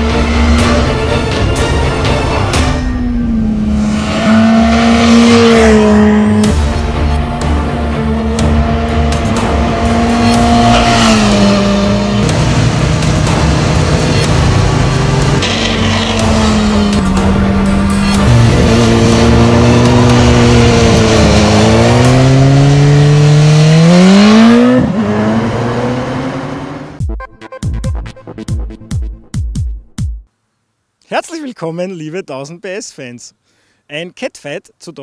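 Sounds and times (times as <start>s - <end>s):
motorcycle engine revving: 0.0s - 27.0s.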